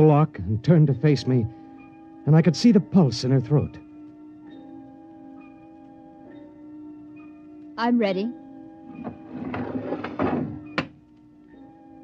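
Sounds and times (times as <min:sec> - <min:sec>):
sliding door click: 0:08.9 - 0:10.9
door sharp clunk: 0:09.0 - 0:11.0.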